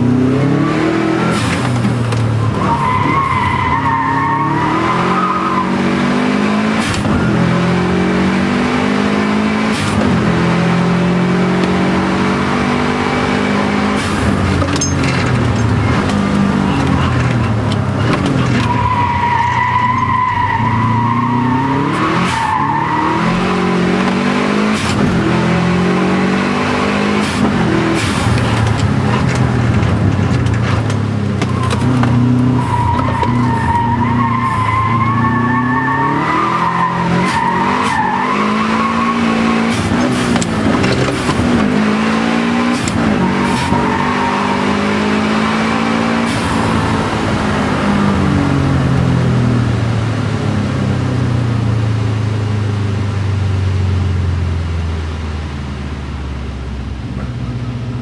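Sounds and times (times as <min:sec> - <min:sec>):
car engine revving: 0:00.0 - 0:55.8
tyres squealing: 0:31.4 - 0:41.3.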